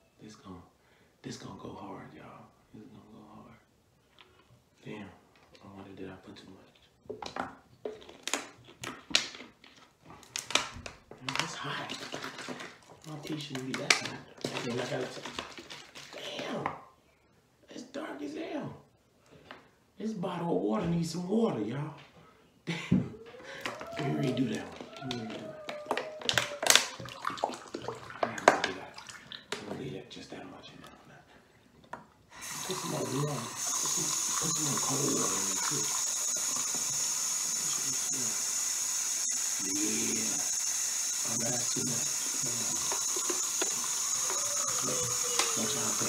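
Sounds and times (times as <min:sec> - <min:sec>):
faucet water running into sink: 0:11.4 - 0:16.2, 0:26.3 - 0:29.6, 0:32.3 - 0:46.0
plastic bottle crackling: 0:23.5 - 0:29.7.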